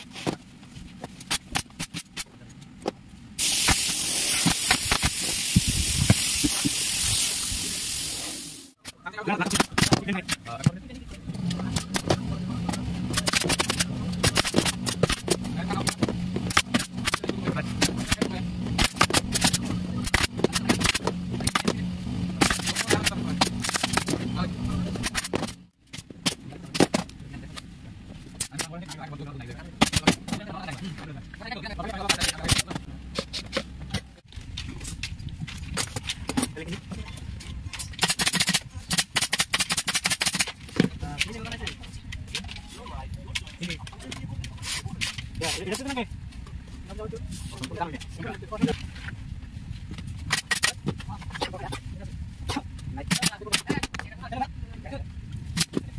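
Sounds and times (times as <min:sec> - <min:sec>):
pneumatic staple gun firing: 0:03.4 - 0:08.1, 0:38.0 - 0:40.5
steady low hum: 0:08.3 - 0:55.9.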